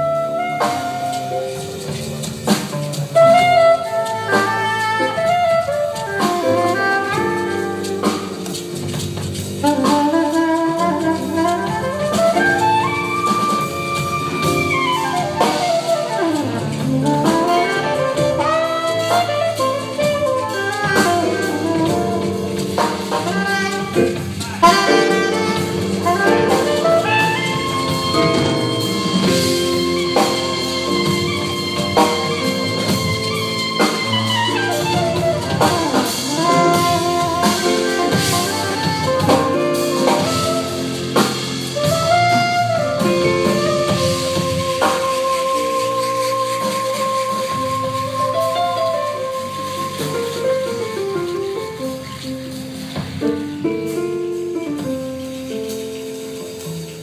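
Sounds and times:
congas: 0:00.0 - 0:57.0
drum kit: 0:00.0 - 0:57.0
jazz band playing: 0:00.0 - 0:57.0
piano: 0:00.0 - 0:57.0
saxophone melody: 0:00.0 - 0:57.0
upright double bass: 0:00.0 - 0:57.0.

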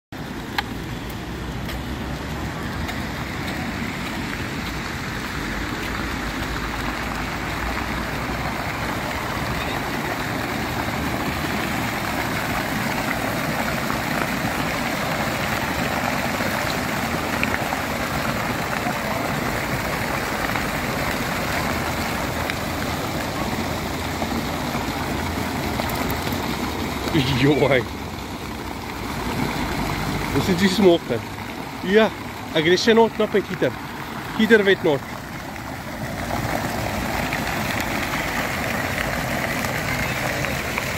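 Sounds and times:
fountain water splashing: 0:00.2 - 0:40.9.

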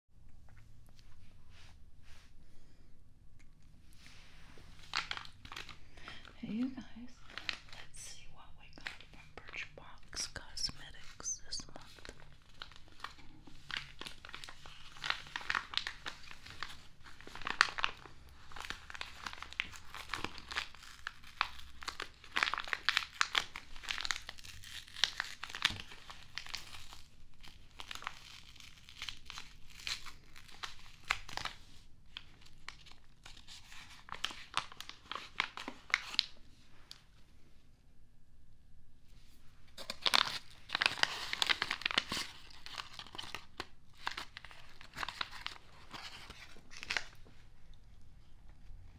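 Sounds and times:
packaging crinkling and tearing: 0:04.6 - 0:37.0, 0:39.7 - 0:47.4.

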